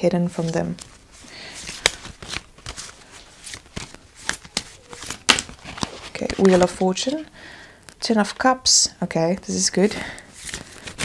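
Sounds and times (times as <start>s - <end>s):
cards being shuffled: 0.4s - 7.3s, 9.8s - 11.0s.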